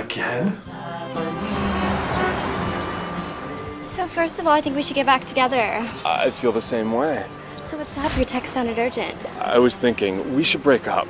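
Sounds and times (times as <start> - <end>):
city traffic road noise: 0.7 - 11.0.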